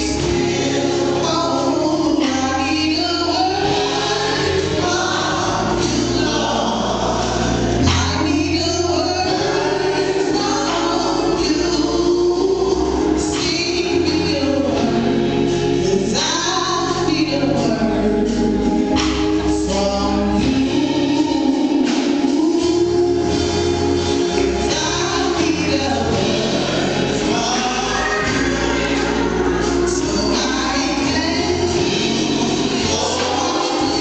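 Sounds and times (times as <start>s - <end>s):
instrumental accompaniment: 0.0s - 34.0s
women singing gospel in harmony: 0.0s - 34.0s.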